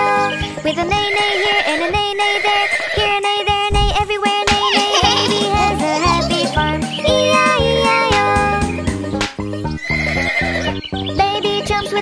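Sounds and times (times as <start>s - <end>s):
instrumental children's song: 0.0s - 12.0s.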